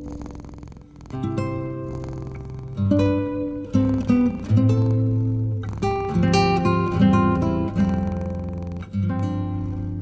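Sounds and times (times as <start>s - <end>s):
acoustic guitar plucked: 0.0s - 10.0s
cat purring: 0.0s - 10.0s.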